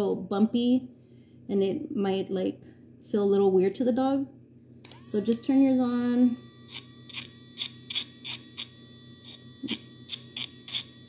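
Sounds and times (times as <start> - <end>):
nail grinder high whine: 4.9 - 11.0
grinder rasping against toenail: 6.6 - 11.0.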